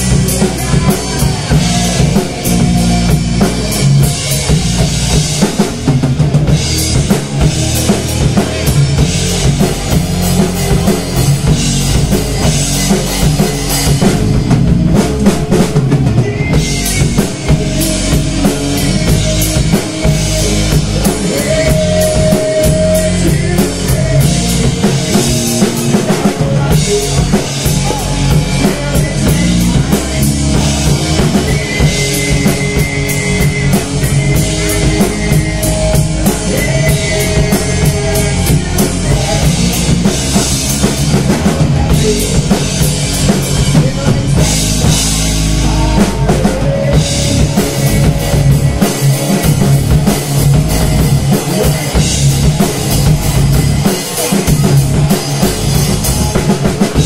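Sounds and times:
bass guitar: 0.0 - 57.0
drum kit: 0.0 - 57.0
electric guitar: 0.0 - 57.0.

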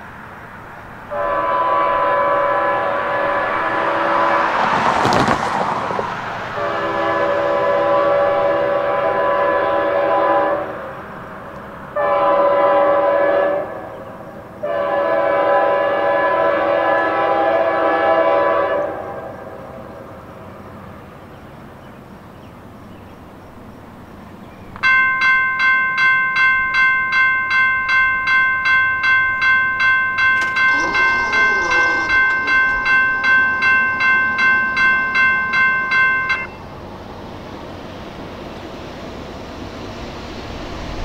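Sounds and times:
locomotive air horn blasts: 1.1 - 4.8, 6.5 - 11.0, 12.0 - 19.7, 30.1 - 36.6.

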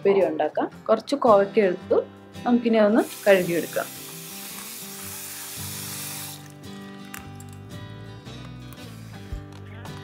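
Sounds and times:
tap water running into bowl: 3.0 - 7.3.

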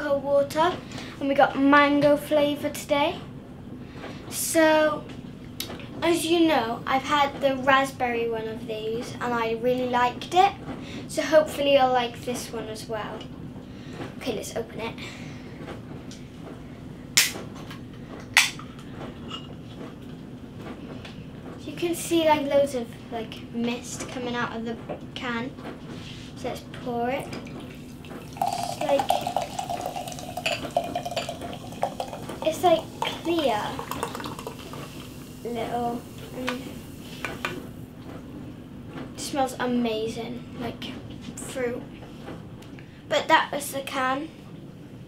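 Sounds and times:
can opening gas cracks: 17.2 - 17.4
soft fizz of drink: 27.4 - 37.7
can clinking against glass: 28.3 - 35.1.

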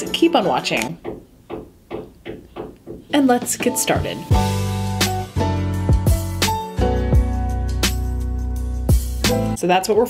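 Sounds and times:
light knocks: 0.8 - 4.1.

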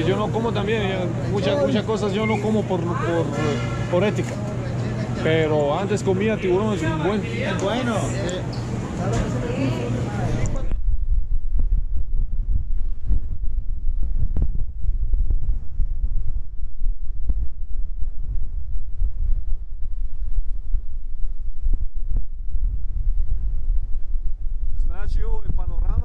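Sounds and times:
wind buffeting microphone: 10.2 - 26.0.

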